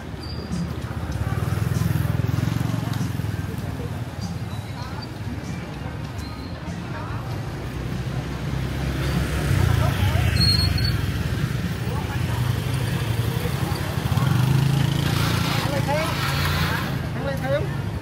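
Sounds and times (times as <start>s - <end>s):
motor scooter engines passing: 0.0s - 18.0s.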